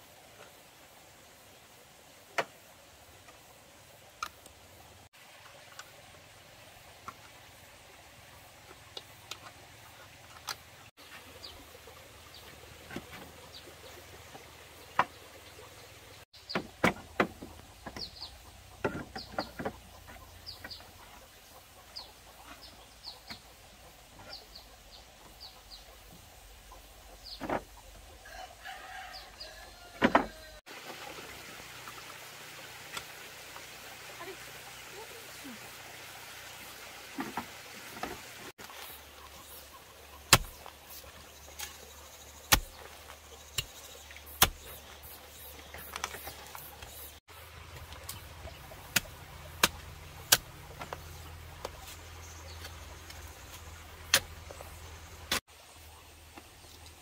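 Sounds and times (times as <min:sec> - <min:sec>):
bamboo poles knocking: 0:16.5 - 0:18.1, 0:18.8 - 0:21.0, 0:30.0 - 0:30.4, 0:47.7 - 0:51.8.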